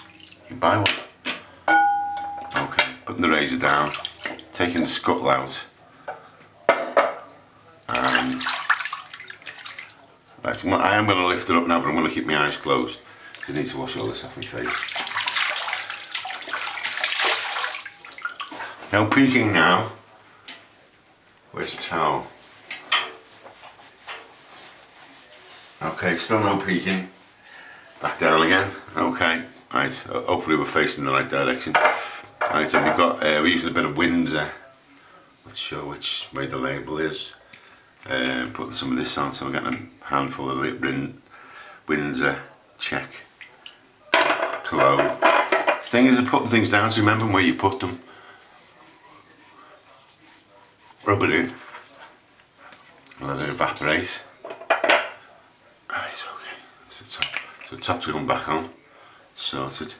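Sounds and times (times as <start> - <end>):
towel rustling: 14.0 - 18.9
hands rubbing skin: 48.5 - 52.9.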